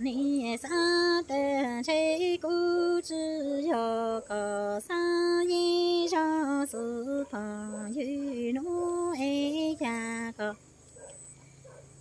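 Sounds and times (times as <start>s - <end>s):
woman singing poetry: 0.0s - 10.7s.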